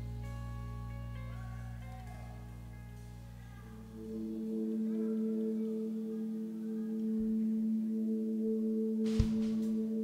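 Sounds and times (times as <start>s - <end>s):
ambient pad drone: 0.0s - 10.0s.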